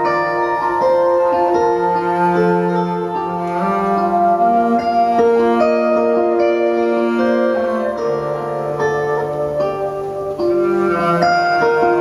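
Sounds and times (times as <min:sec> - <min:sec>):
plucked string melody: 0:00.0 - 0:12.0.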